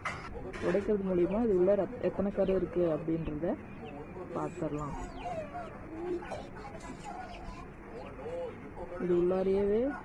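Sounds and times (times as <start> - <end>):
faint distant voices: 0.0 - 10.0
low bird calls: 3.6 - 8.6.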